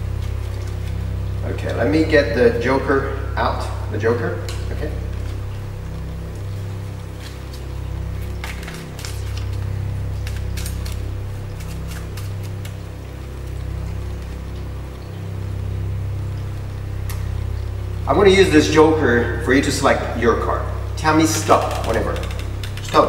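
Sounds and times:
low droning music: 0.0s - 23.0s
playing cards clicking: 8.3s - 12.9s, 21.3s - 23.0s.

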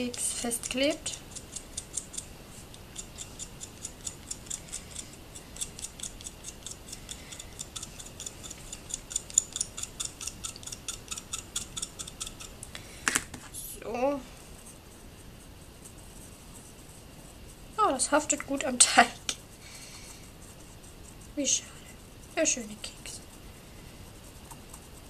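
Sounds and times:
tool scratching chalk: 0.0s - 12.6s.

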